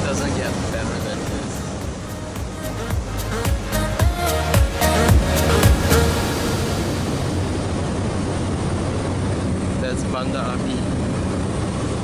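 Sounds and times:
turboprop engine drone: 0.0 - 12.0.

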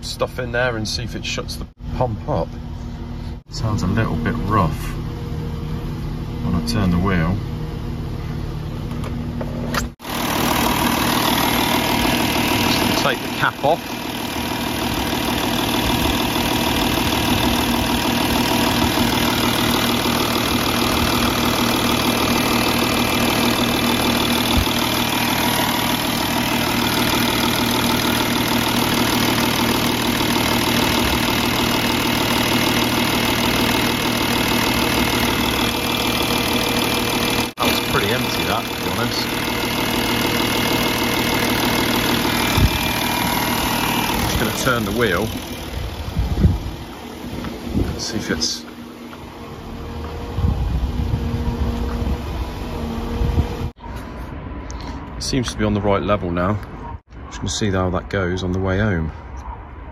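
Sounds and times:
diesel engine idling: 1.3 - 53.9.

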